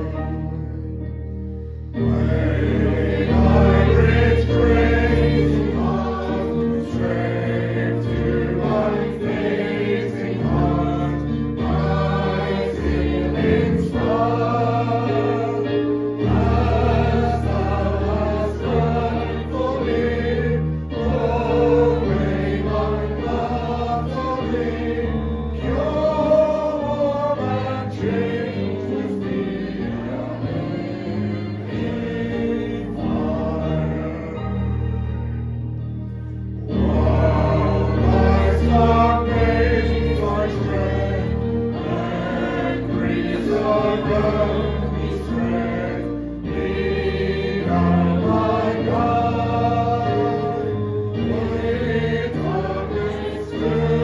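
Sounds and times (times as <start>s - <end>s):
congregation singing a hymn: 0.0s - 54.0s
held accompaniment chords: 0.0s - 54.0s.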